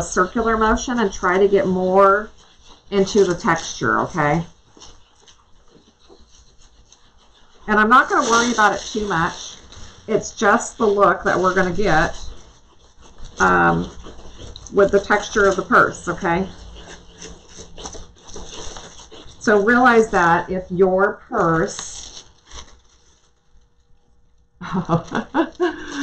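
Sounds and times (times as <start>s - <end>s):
pad rubbing on foil: 0.0s - 23.9s.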